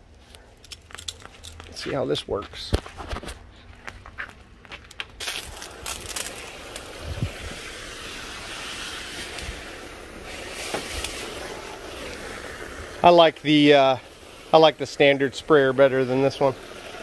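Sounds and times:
water spray hissing: 5.2s - 17.0s.

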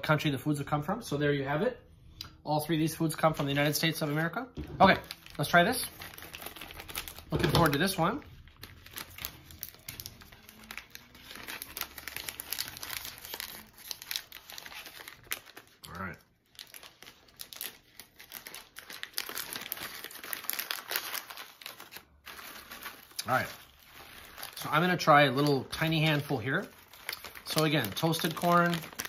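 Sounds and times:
plastic snack bag crinkling: 4.8s - 29.0s.

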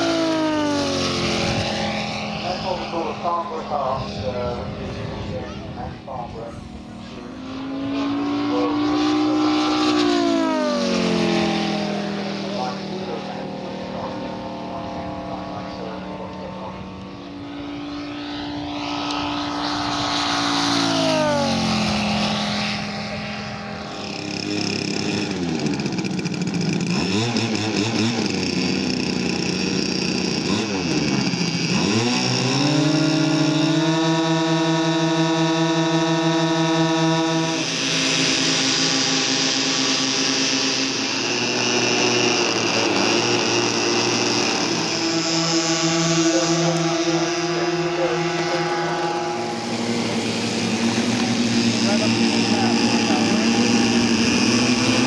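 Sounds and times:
model plane engine diving past: 0.0s - 55.0s
model plane engines humming: 0.0s - 55.0s.

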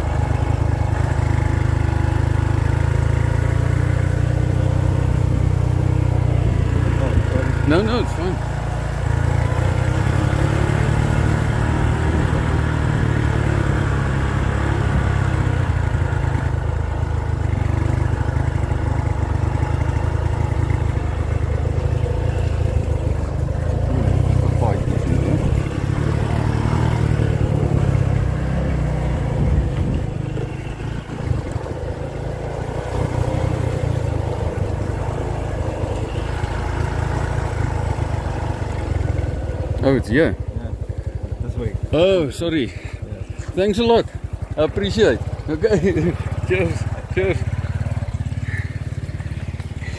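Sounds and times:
motor scooter engine running: 0.0s - 49.9s
wind rumble on microphone: 29.2s - 31.9s.

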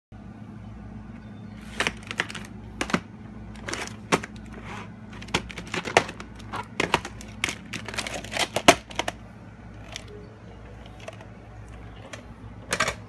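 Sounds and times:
low hum: 0.2s - 13.0s.

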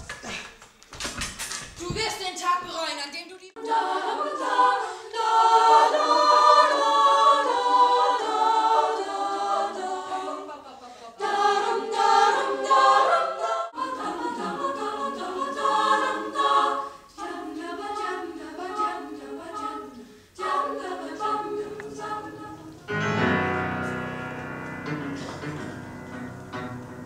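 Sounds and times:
women's choir singing: 3.5s - 27.0s.

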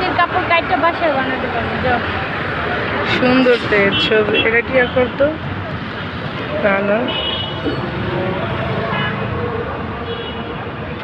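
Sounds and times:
steady traffic: 0.0s - 11.0s.

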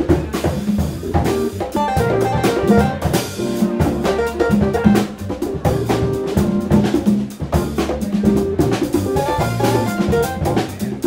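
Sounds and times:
drum kit hits: 0.0s - 11.0s
electric bass: 0.0s - 11.0s
keyboards: 0.0s - 11.0s.

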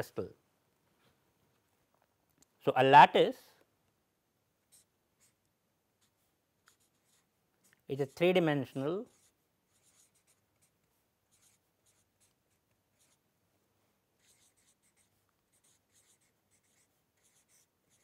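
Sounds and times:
marker scratching on paper: 4.7s - 5.4s, 6.0s - 13.2s, 14.2s - 18.0s.

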